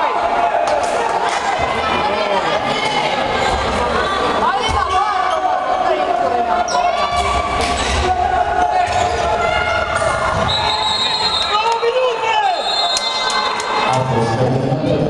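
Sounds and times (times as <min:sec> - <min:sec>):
crowd noise echoing: 0:00.0 - 0:15.0
people shouting: 0:03.9 - 0:14.0
high steady whistle tone: 0:10.5 - 0:11.7, 0:12.5 - 0:13.9.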